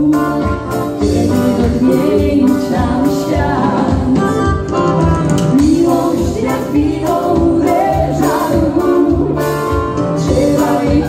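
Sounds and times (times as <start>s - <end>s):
drum kit steady beat: 0.0s - 11.0s
electronic keyboard: 0.0s - 11.0s
person singing: 0.0s - 11.0s.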